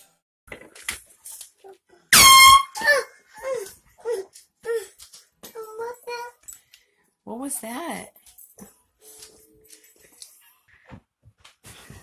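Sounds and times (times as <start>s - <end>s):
loud air horn blast: 2.1s - 2.9s.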